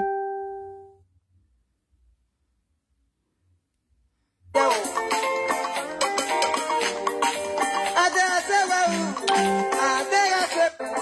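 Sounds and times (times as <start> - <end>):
chime tones: 8.9 - 9.8.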